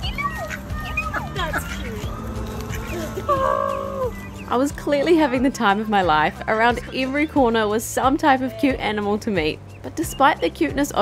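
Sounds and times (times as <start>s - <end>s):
background music: 0.0s - 11.0s
waterfowl calling: 0.4s - 4.7s.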